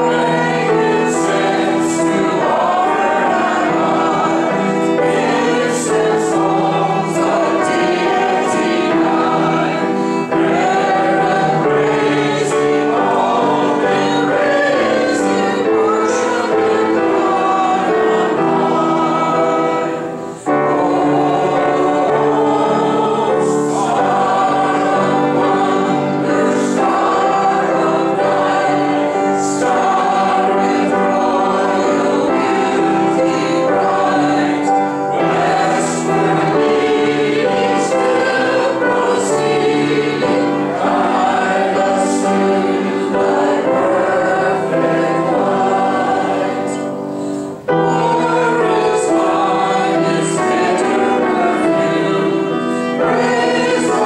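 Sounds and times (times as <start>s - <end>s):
congregation singing a hymn: 0.0s - 54.0s
piano: 0.0s - 54.0s
violin: 0.0s - 54.0s.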